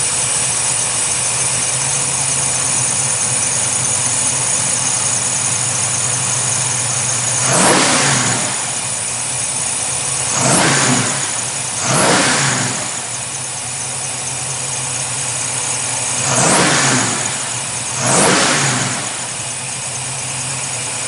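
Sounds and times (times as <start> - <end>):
car engine idling and revving: 0.0 - 21.0.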